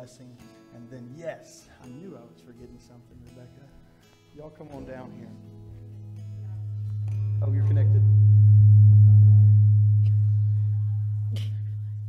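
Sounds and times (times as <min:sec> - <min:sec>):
loud low hum: 0:05.7 - 0:12.0.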